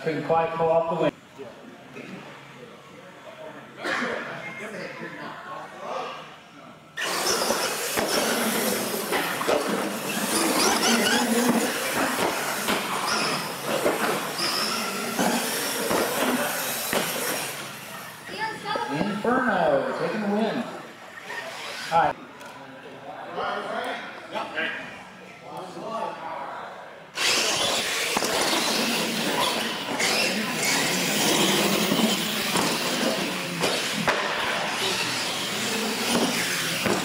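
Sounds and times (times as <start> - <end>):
toy truck motor and gear whine: 7.0 - 18.2, 27.2 - 37.0
tyre noise on concrete: 27.2 - 37.0.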